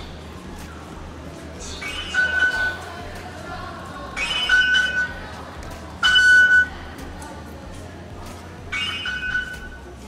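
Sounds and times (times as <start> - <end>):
station concourse hum: 0.0 - 10.0.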